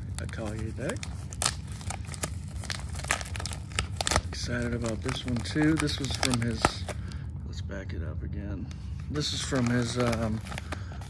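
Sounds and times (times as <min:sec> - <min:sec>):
paper packaging crinkling and tearing: 0:00.0 - 0:07.2, 0:09.0 - 0:11.0.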